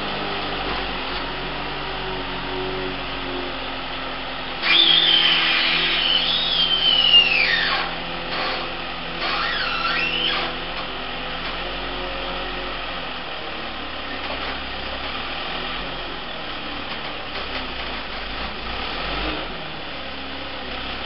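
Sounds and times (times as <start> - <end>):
telehandler engine running: 0.0 - 21.0.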